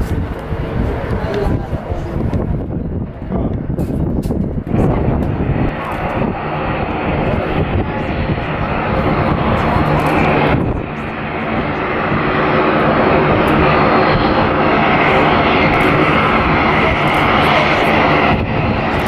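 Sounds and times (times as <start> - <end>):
turboprop propeller drone: 0.0 - 19.0.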